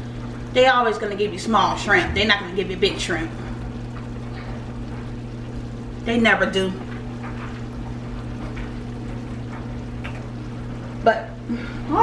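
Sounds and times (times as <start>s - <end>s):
sauce bubbling in skillet: 0.0s - 12.0s
low hum: 0.8s - 5.9s.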